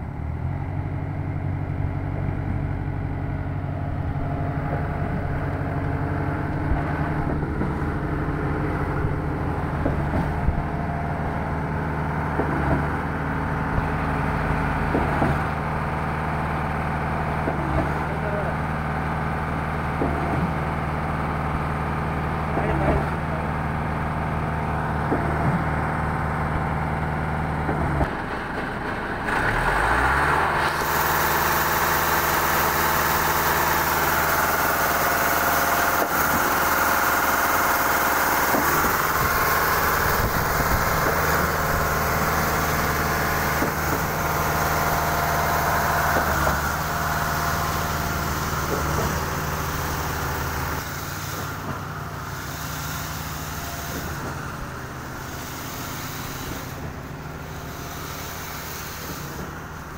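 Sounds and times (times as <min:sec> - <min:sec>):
concrete pump engine running: 0:00.0 - 0:59.9.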